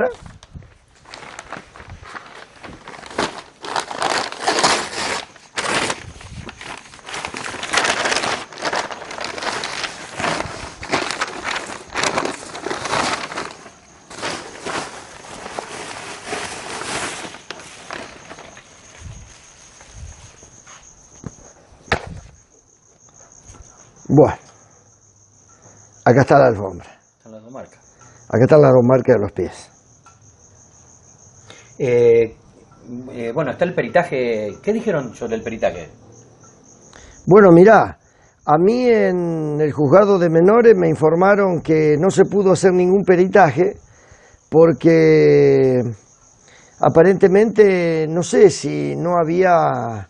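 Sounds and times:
crickets chirping: 0.0s - 50.0s
paper bag rustling and crinkling: 0.1s - 22.3s
sharp knock: 21.9s - 22.2s.

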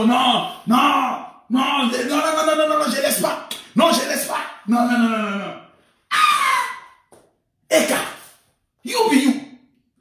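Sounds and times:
man's high-pitched scream: 5.2s - 7.1s.

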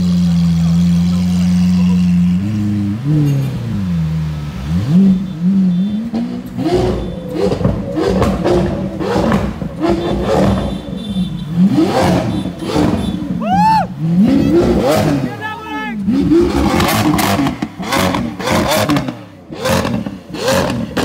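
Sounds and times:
car engine revving: 0.0s - 21.0s
exhaust pops and bangs: 6.2s - 10.8s.

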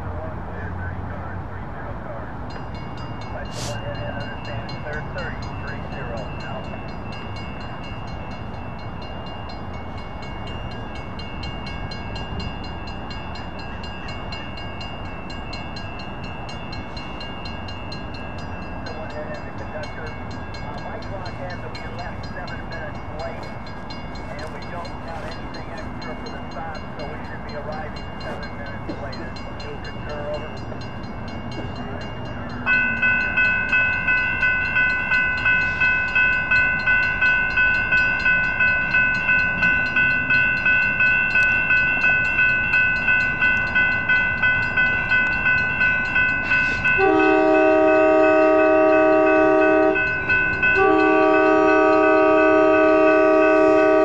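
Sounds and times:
background traffic hum: 0.0s - 54.0s
railroad crossing bells ringing: 0.0s - 54.0s.

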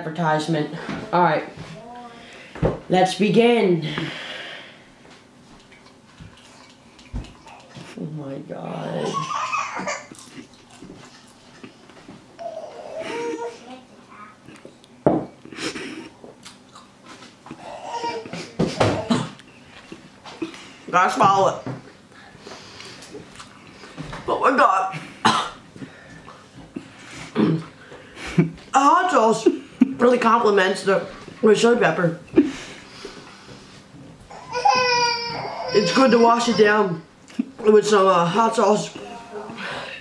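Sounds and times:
man coughing: 25.2s - 25.6s.

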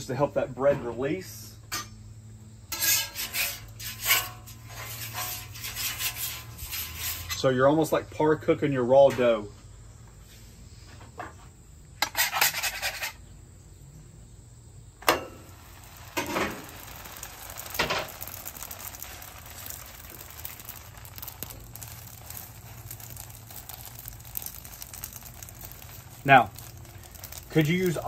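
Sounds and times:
dough sizzling on hot griddle: 1.7s - 8.6s, 9.2s - 28.0s.

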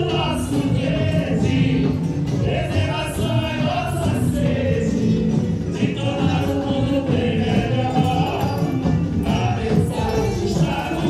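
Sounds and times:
carnival parade music: 0.0s - 11.0s
many voices singing together: 0.0s - 11.0s.

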